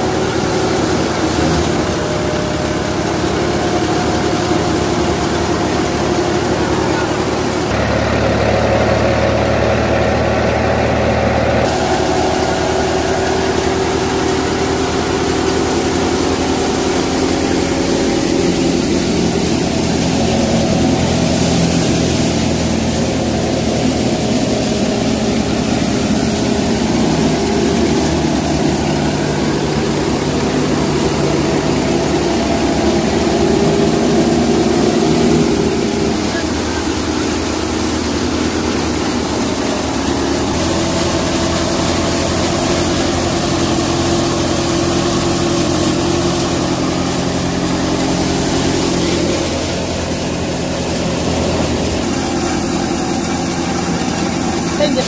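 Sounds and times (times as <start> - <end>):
thresher drum and fan: 0.0 - 55.0
tractor diesel engine running: 0.0 - 55.0.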